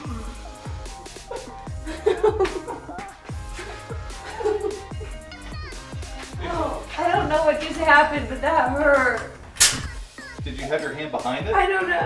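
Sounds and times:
music with steady beat: 0.0s - 12.0s
nail gun firing into wood: 9.6s - 9.9s.

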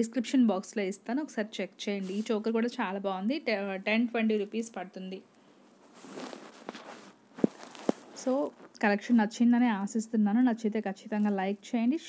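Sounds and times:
soft hiss: 0.0s - 12.0s.

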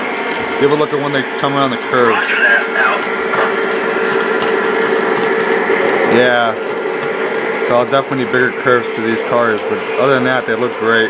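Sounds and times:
model train running on track: 0.0s - 11.0s.

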